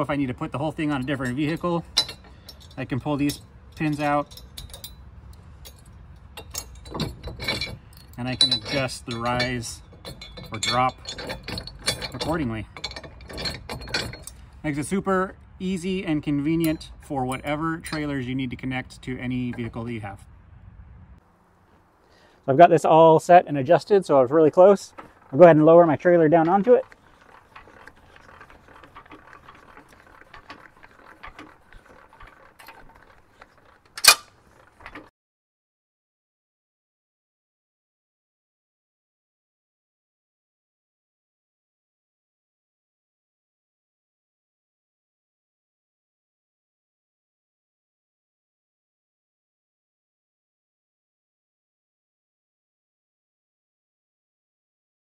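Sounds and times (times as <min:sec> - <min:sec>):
metal pin clicks and scrapes: 0:00.8 - 0:14.6, 0:26.2 - 0:35.1
metal clack of coupler: 0:05.6 - 0:14.4, 0:24.9 - 0:35.1.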